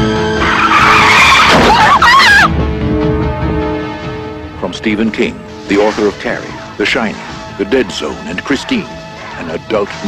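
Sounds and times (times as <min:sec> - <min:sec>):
music: 0:00.0 - 0:10.0
car tyres screeching: 0:00.1 - 0:02.0.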